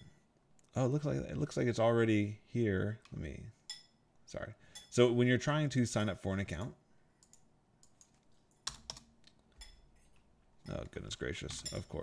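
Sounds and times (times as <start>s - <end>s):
keystrokes on computer keyboard: 7.2s - 9.6s.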